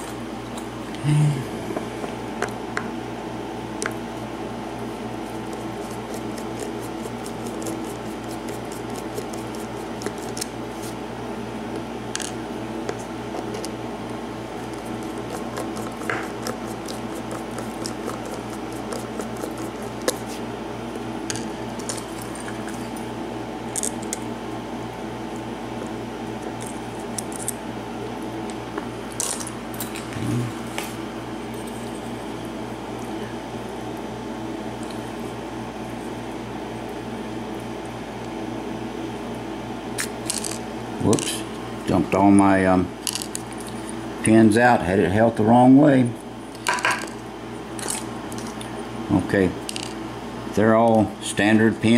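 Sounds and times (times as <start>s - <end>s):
steady low hum: 0.0s - 51.9s.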